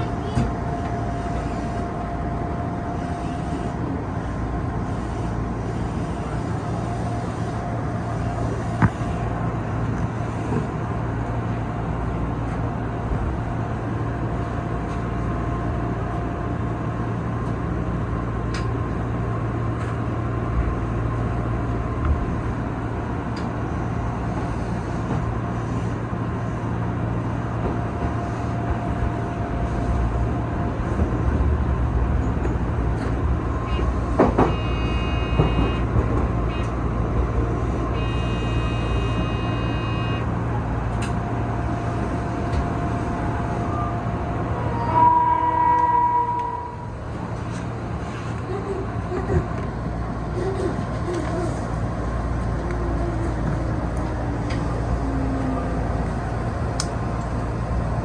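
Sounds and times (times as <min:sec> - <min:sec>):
train wheels and traction rumble: 0:00.0 - 0:58.0.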